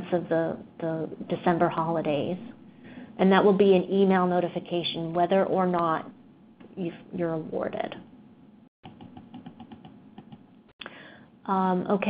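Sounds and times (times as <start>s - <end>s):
computer keyboard typing: 8.8s - 10.4s.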